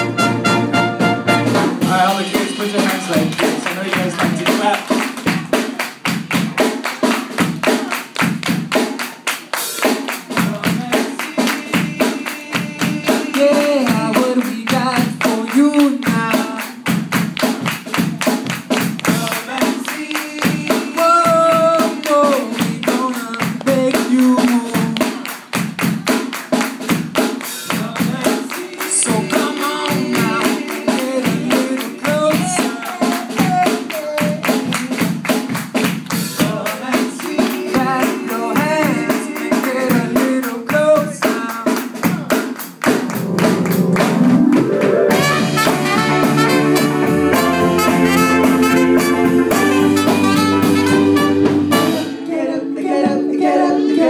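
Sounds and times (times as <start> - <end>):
live ska band playing: 0.0 - 54.0.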